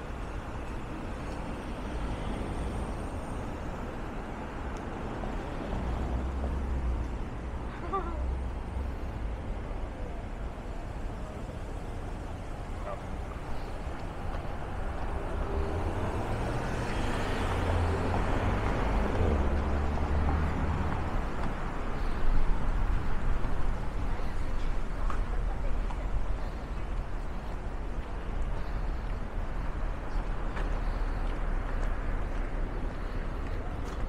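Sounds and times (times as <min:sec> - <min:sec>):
low street rumble: 0:00.0 - 0:34.0.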